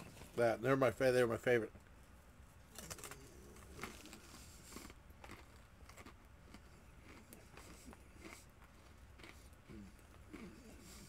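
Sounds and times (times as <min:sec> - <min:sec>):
pretzels being chewed: 0:02.7 - 0:11.0.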